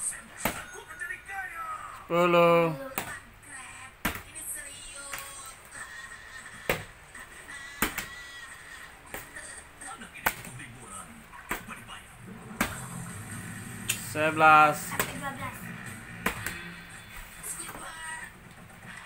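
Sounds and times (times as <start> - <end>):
faint background music: 0.0 - 19.0.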